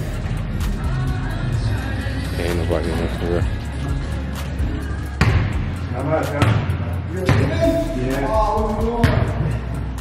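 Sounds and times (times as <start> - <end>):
sharp thuds echoing in hall: 5.2 - 5.7, 6.4 - 7.8.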